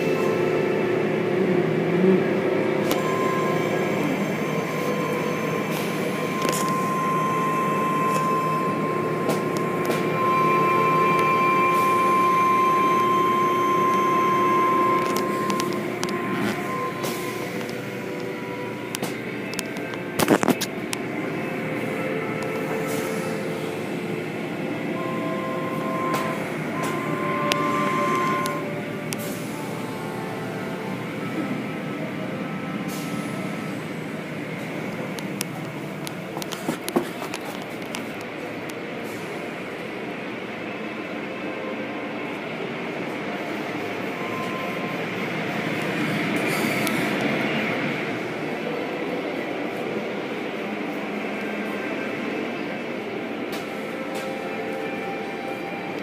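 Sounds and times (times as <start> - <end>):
steady whine: 0.0 - 56.0.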